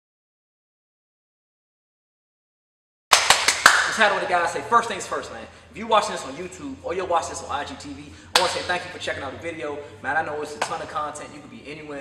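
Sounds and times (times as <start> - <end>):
hands clapping: 3.1 - 4.2, 8.4 - 8.8, 10.6 - 10.9
man speaking: 3.9 - 12.0.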